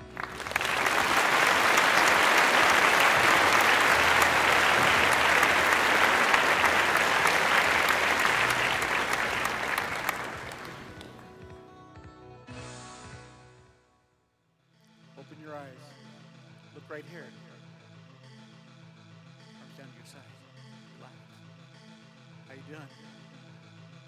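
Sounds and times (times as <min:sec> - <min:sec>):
audience applauding: 0:00.0 - 0:11.2.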